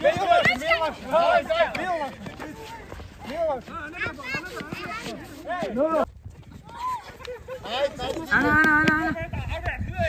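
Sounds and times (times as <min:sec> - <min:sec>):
people shouting excitedly: 0:00.0 - 0:06.0, 0:06.6 - 0:09.4.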